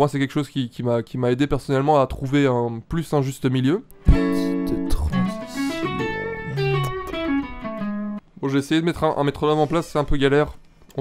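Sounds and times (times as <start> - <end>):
electric guitar phrase: 4.0 - 8.2.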